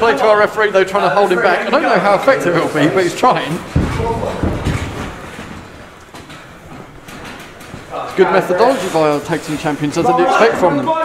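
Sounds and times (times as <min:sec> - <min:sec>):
wrestling venue background noise: 0:00.0 - 0:11.0
faint knocks: 0:03.5 - 0:09.9.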